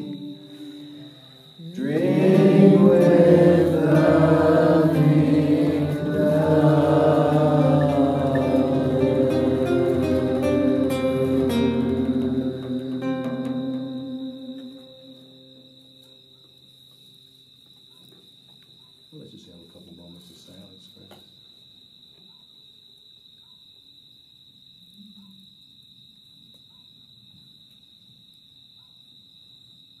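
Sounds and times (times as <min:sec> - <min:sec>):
crickets trilling: 0:00.0 - 0:30.0.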